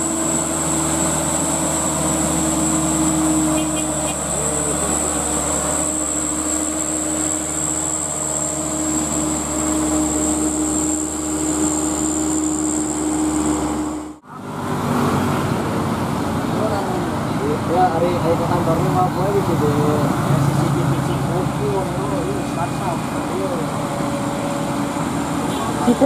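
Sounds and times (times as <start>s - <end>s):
diesel truck engine drone: 0.0s - 26.0s
high-pitched whine: 0.0s - 26.0s
vehicle sound: 0.0s - 26.0s.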